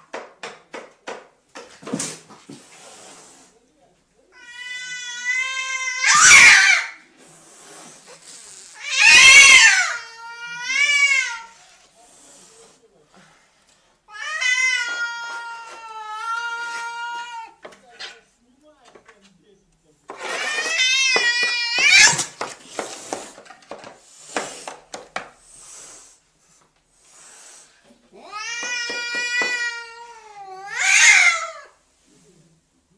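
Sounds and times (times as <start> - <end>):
cat yowling: 4.4 - 7.0, 8.8 - 11.5, 20.3 - 22.3, 28.2 - 31.7.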